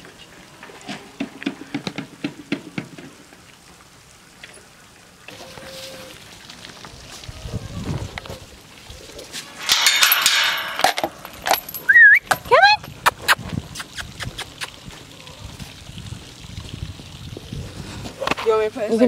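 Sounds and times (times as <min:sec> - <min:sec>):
metal gate and chain rattling: 0:09.2 - 0:12.7
metal clicks: 0:09.6 - 0:12.0.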